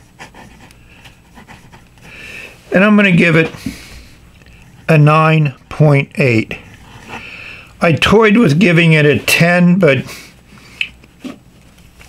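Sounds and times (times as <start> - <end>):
short breath or hum: 2.0 - 2.6.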